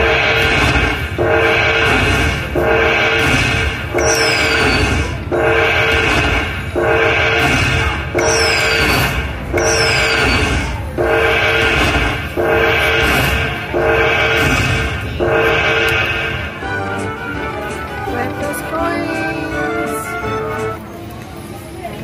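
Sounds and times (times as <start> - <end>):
slot machine jingle: 0.0 - 20.9.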